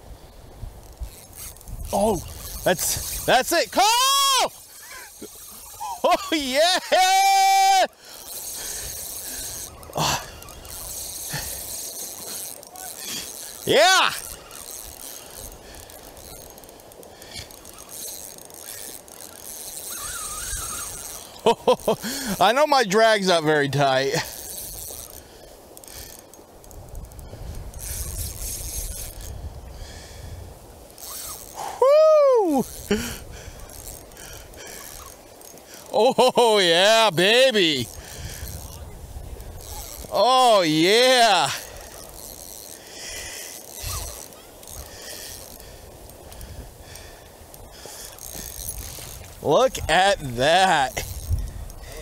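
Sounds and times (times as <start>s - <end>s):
wind rumble on microphone: 0.0s - 3.3s, 26.7s - 30.8s, 37.8s - 40.1s, 45.6s - 52.0s
water rushing: 1.3s - 25.0s, 34.0s - 51.0s
man whooping: 3.6s - 4.6s, 5.8s - 7.9s, 13.7s - 14.2s, 31.6s - 32.7s, 35.9s - 37.8s, 40.1s - 41.6s.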